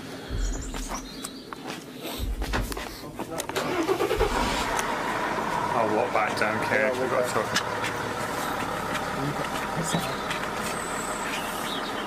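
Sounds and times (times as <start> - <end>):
car engine running: 0.0 - 1.5, 2.2 - 12.0.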